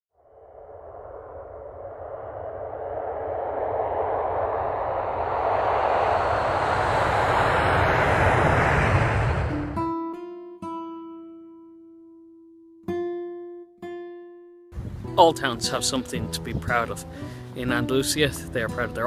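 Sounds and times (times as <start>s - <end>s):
rushing whoosh: 0.2s - 10.0s.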